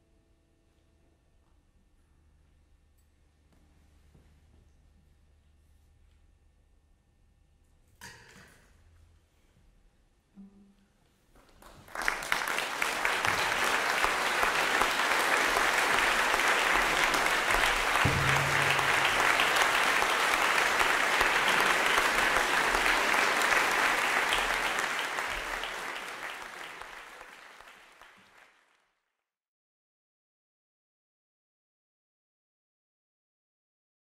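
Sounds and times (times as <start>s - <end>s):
audience applauding: 11.6s - 28.8s.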